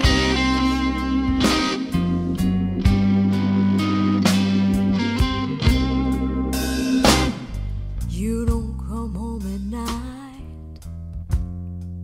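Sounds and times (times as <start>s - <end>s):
blues guitar: 0.0s - 11.7s
bass guitar: 0.0s - 12.0s
drum hits: 1.2s - 3.6s, 4.2s - 8.7s.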